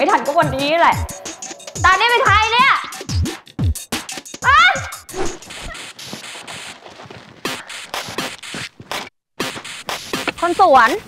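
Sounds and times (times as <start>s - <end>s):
woman's startled cry: 4.4s - 5.1s.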